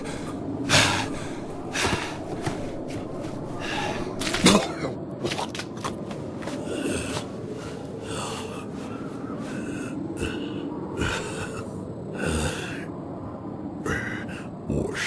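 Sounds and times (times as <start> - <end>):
man breathing heavily and gasping: 0.0 - 4.3.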